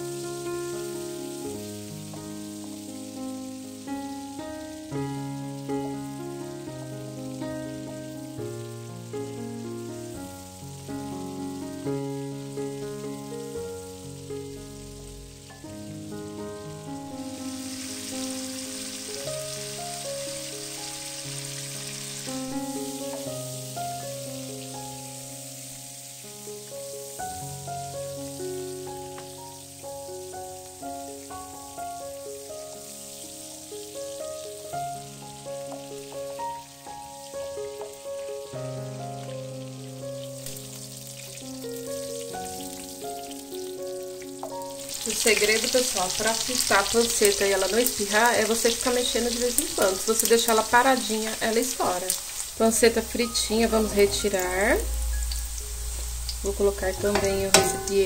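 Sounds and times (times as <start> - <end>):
slow melody of held notes: 0.0 - 45.1, 52.6 - 58.0
pork sizzling in a pot: 0.0 - 58.0.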